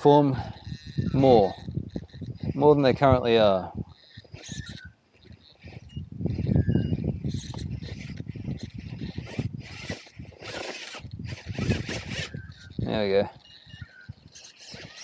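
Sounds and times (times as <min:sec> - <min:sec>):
tyres scraping and crunching on rock: 0:07.3 - 0:15.0.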